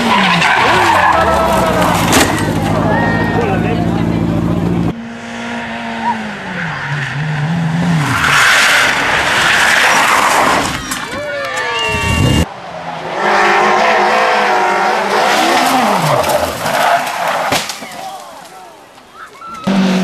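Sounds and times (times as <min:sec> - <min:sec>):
rally car engine high-revving: 0:00.0 - 0:10.6, 0:13.0 - 0:17.4, 0:19.6 - 0:20.0
rally car engine braking: 0:00.0 - 0:20.0.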